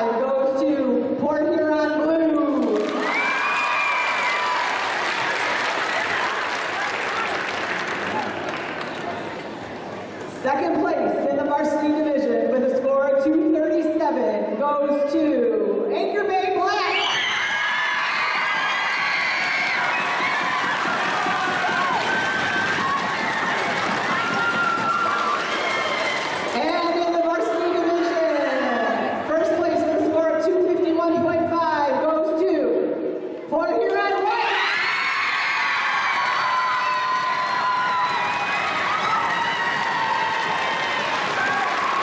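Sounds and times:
crowd clapping in a hall: 0:02.6 - 0:10.1, 0:17.7 - 0:26.6, 0:35.0 - 0:42.0
high-pitched cheer: 0:02.8 - 0:08.3, 0:16.8 - 0:26.6, 0:34.3 - 0:42.0.

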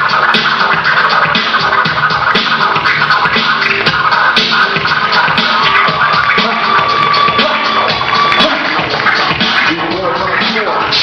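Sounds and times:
backing beat: 0:00.0 - 0:11.0
vinyl record scratching: 0:00.0 - 0:11.0.

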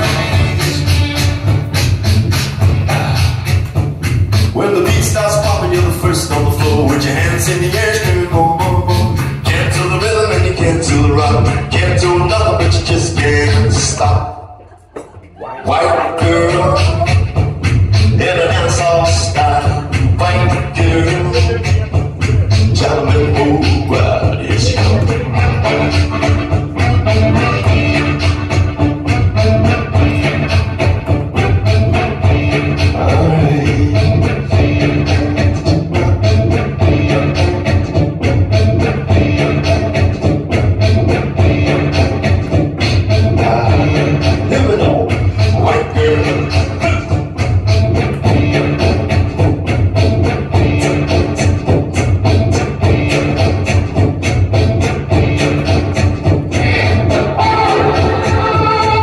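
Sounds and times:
instrumental music with steady beat: 0:00.0 - 0:14.4, 0:16.1 - 0:59.0
harmonica playing: 0:57.4 - 0:59.0.

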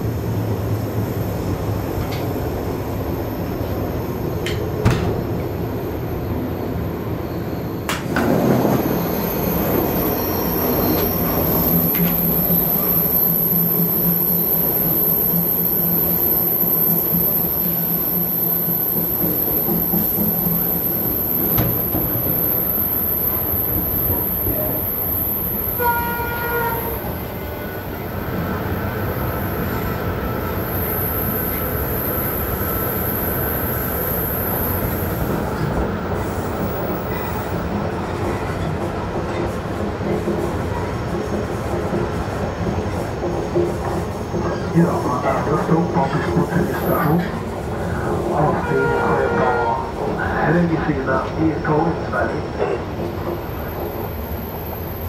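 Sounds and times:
train rolling rumble: 0:00.0 - 0:55.0
short train horn tone: 0:25.7 - 0:27.1, 0:48.4 - 0:50.0.

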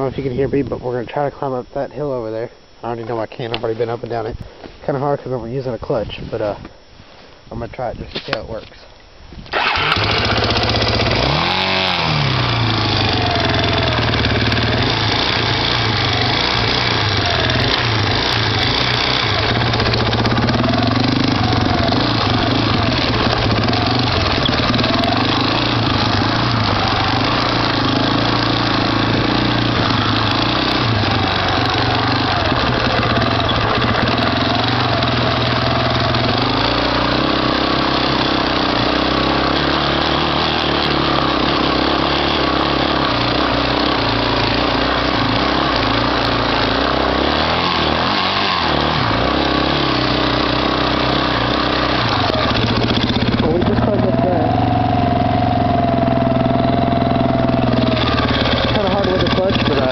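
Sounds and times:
quad engine revving: 0:09.5 - 0:59.9.

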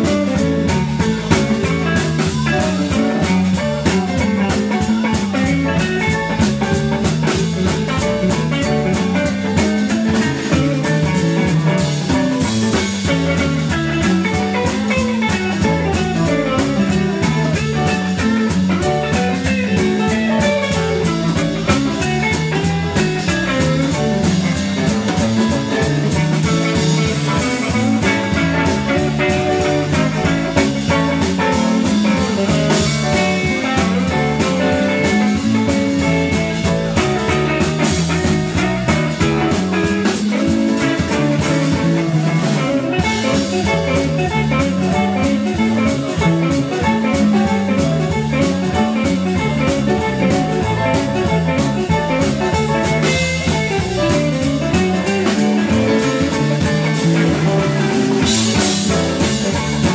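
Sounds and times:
bass: 0:00.0 - 0:59.9
drum kit: 0:00.0 - 0:59.9
electric guitar: 0:00.0 - 0:59.9.

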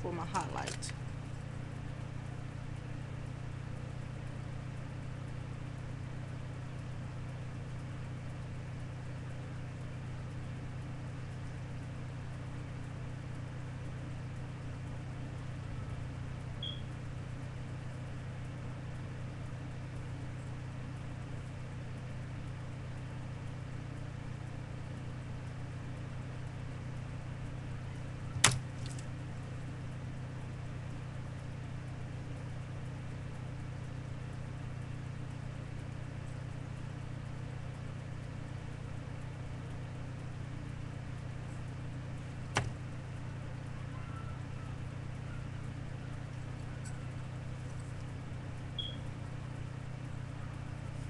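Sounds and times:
steady low hum: 0:00.0 - 0:51.0.

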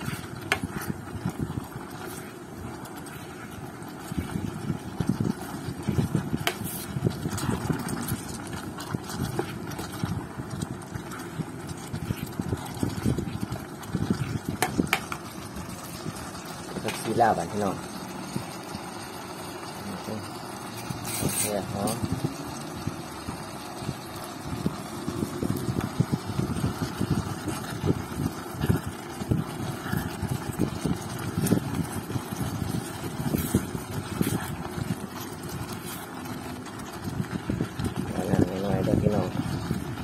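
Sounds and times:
ladle stirring in a pot: 0:00.0 - 0:40.0
person talking: 0:16.7 - 0:17.9, 0:21.2 - 0:22.4, 0:38.1 - 0:39.4.

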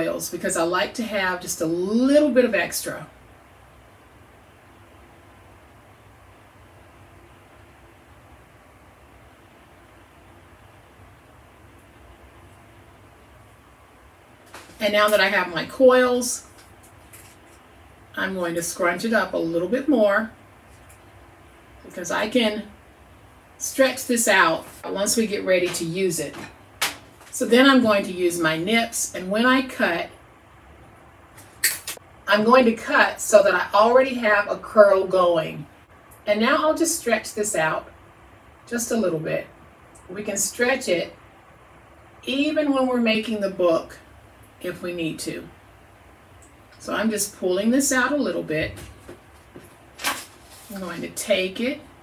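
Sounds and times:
faint hiss and low hum: 0:00.0 - 0:52.0.

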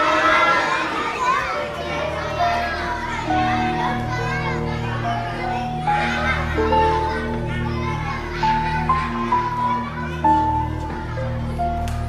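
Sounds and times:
background music with low drone: 0:00.0 - 0:12.0
children calling and chattering: 0:00.0 - 0:12.0.

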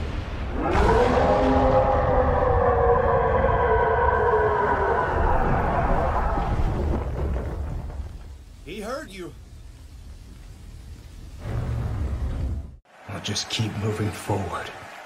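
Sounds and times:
deep monster roar: 0:00.5 - 0:07.0.

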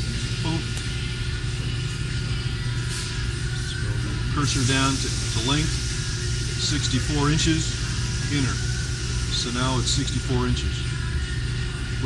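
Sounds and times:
low machine hum: 0:00.0 - 0:12.0
hiss: 0:04.4 - 0:09.4.

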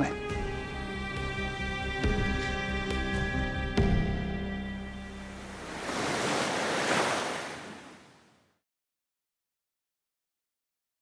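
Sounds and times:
sea surf washing in: 0:05.1 - 0:08.3.

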